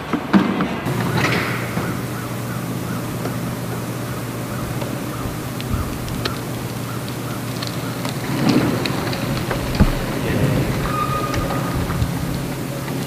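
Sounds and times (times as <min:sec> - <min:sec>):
low mechanical hum: 0:00.0 - 0:13.0
rumbling outdoor noise: 0:00.0 - 0:13.0
sharp clicks: 0:04.6 - 0:09.8.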